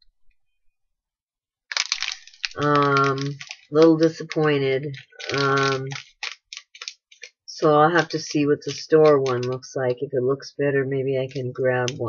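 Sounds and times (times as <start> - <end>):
plastic bag crinkling: 1.7 - 9.8, 11.2 - 12.0.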